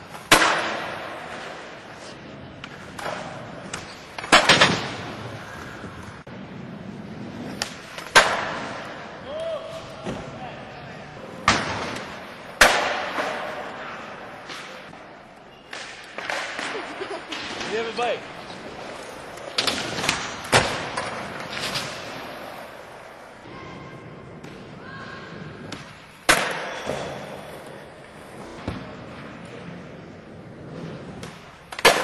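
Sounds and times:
skateboard landings with echo: 0.0s - 32.0s.

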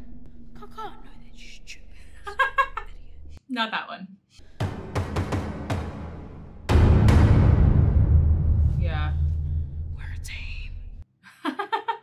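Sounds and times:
deep boom: 4.6s - 11.0s.

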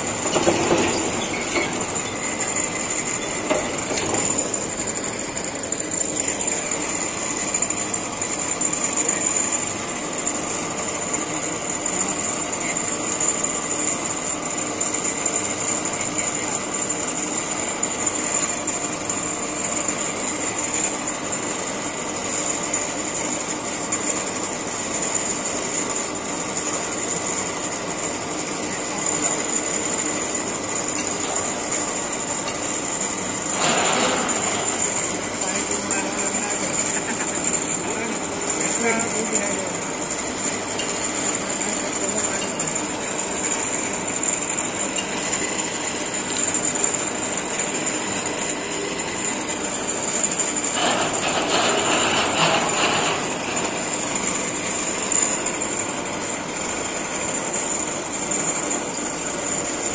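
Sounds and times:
crane hoist hum with whine: 0.0s - 59.9s.

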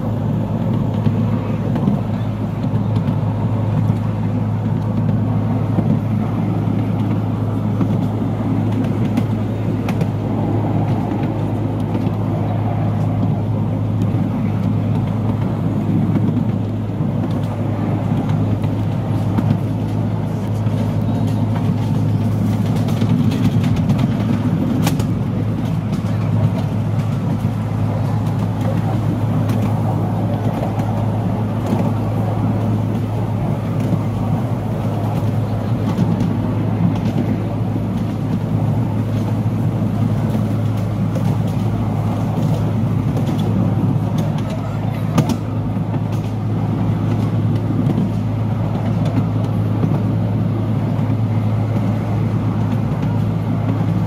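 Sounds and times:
miniature train rumbling on rails: 0.0s - 54.0s
steady low hum: 0.0s - 54.0s.

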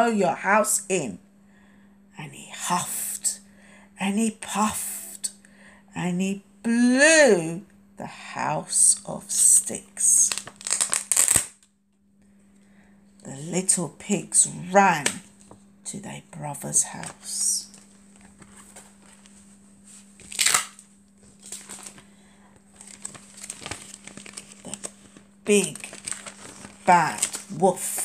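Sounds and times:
laminated cards crackling rustle: 10.1s - 11.7s, 16.9s - 28.0s
plastic sheet crinkling: 10.2s - 11.6s, 17.0s - 28.0s.

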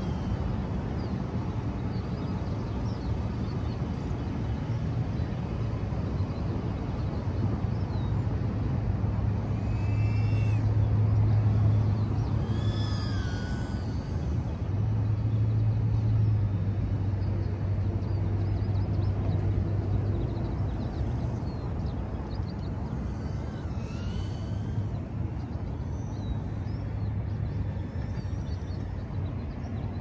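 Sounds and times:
high-pitched sliding whines: 0.0s - 1.1s, 9.3s - 14.8s, 20.5s - 29.2s
low outdoor rumble with hum: 0.0s - 30.0s.

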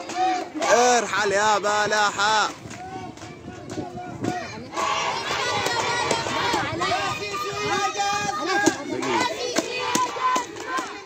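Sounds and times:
crowd of protesters shouting: 0.0s - 11.0s.

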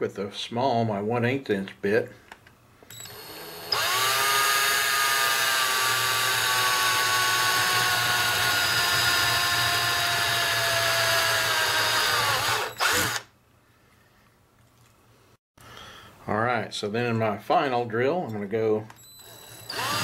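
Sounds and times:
cordless drill whining: 2.9s - 13.3s, 19.0s - 20.0s.

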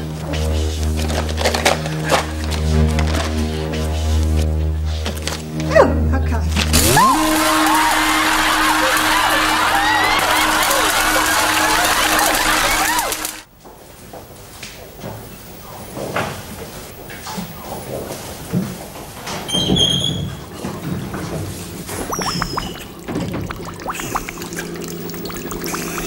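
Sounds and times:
steady drone: 0.0s - 13.5s, 21.6s - 26.0s
crowd noise and laughter: 6.6s - 13.4s
wooden door creaking open: 19.5s - 20.7s.

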